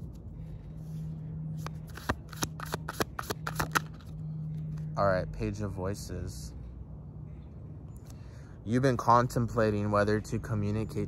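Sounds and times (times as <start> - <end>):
cards shuffled by hand: 1.6 - 4.1.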